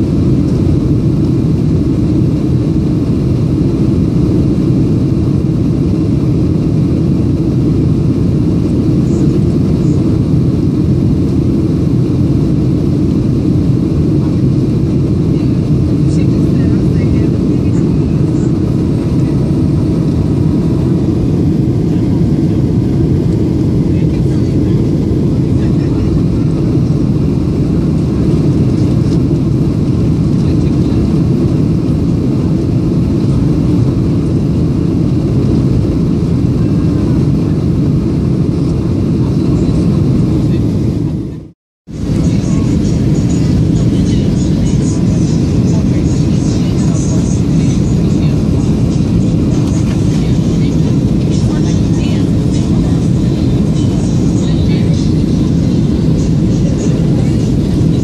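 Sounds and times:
jet engines and airflow in cabin: 0.0 - 58.0.

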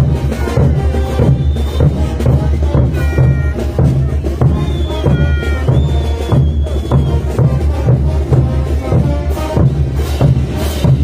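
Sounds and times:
bass drum beat: 0.0 - 11.0
marching brass band: 0.0 - 11.0
held high note: 2.8 - 6.2.

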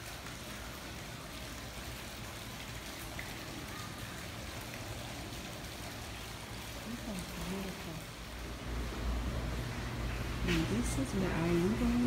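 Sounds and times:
water trickling and splashing: 0.0 - 12.0.

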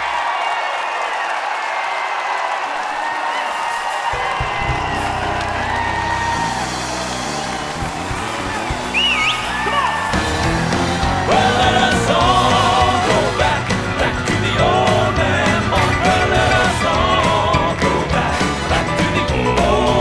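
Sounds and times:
crowd cheering: 0.0 - 20.0
gospel quartet and band performing: 4.1 - 20.0.

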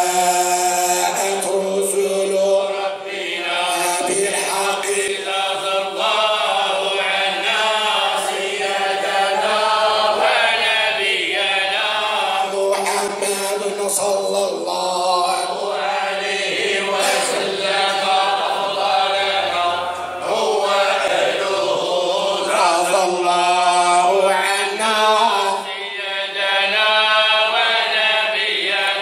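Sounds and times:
men chanting in unison: 0.0 - 29.0.

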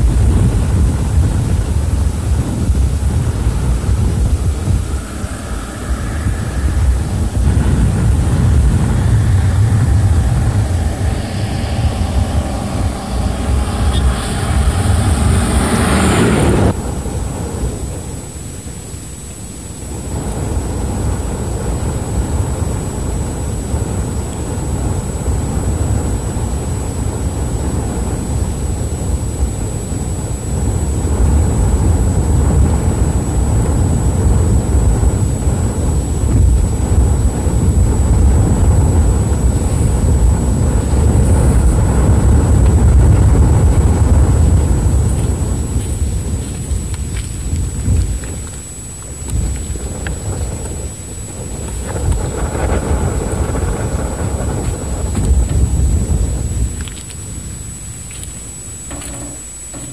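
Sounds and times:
off-road vehicles rumbling: 1.9 - 16.8
bus engine: 7.4 - 16.8.

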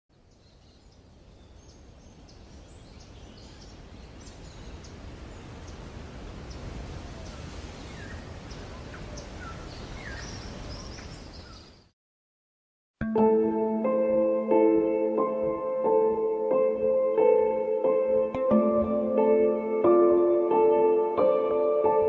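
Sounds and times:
small birds chirping: 0.2 - 11.9.

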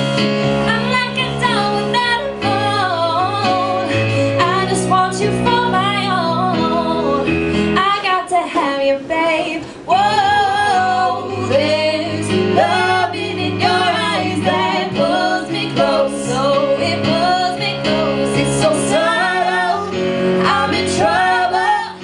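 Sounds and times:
electric keyboard chords: 0.0 - 22.0
woman singing pop vocals: 0.6 - 22.0.

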